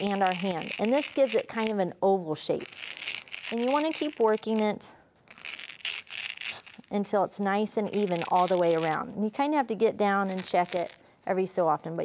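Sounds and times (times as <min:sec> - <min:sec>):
styrofoam ball crackling: 0:00.0 - 0:01.8, 0:02.5 - 0:11.1.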